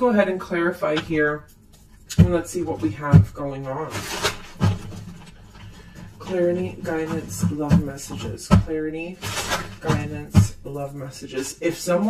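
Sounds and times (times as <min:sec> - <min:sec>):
cards rustling: 0:00.8 - 0:02.8, 0:03.4 - 0:12.0.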